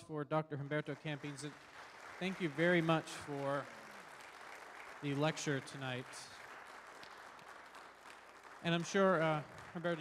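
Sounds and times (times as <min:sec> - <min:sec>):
faint audience applause: 0:00.6 - 0:10.0.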